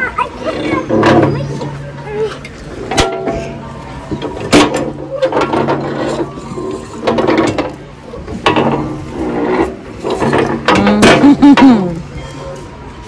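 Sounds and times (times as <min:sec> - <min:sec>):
metal seesaw creaking: 0:00.4 - 0:12.7.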